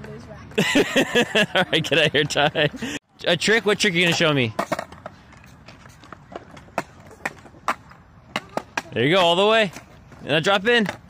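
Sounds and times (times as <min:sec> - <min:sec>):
skateboard wheels rumbling on concrete: 0:00.0 - 0:11.0
skateboard clicks and clacks: 0:03.5 - 0:11.0.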